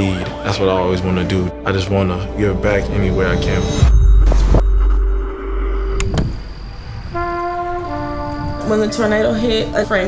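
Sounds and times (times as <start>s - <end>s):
held synth note: 2.6s - 6.1s.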